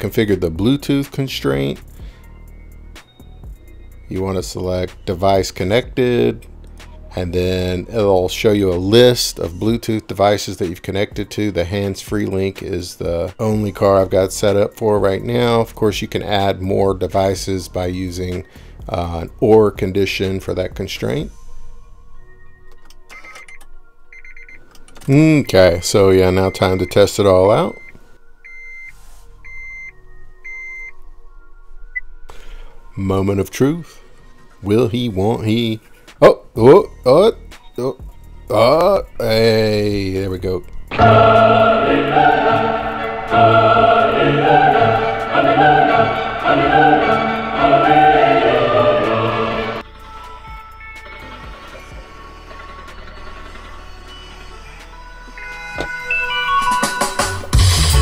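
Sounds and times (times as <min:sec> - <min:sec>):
music: 0:00.0 - 0:58.0
car dashboard chime beeps: 0:27.7 - 0:31.0
low rumble: 0:40.9 - 0:49.8.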